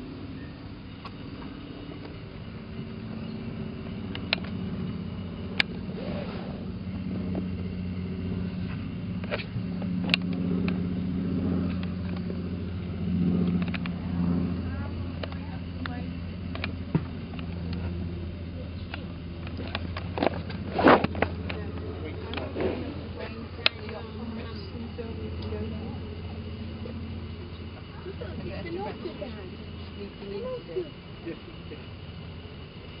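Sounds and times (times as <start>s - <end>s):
steady low hum: 0.0s - 33.0s
murmur of voices: 21.4s - 32.0s.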